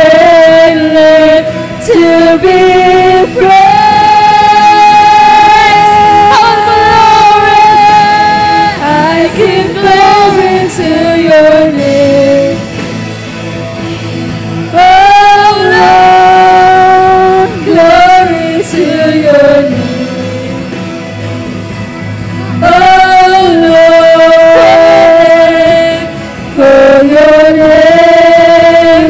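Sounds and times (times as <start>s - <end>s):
worship singing with band: 0.0s - 13.3s, 14.0s - 29.0s.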